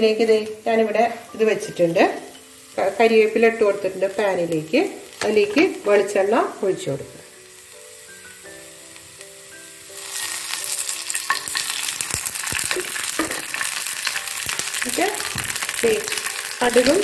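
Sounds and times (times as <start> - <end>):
leaves crackling as they fry: 0.0 - 17.0
oil sizzling in a pan: 0.0 - 17.0.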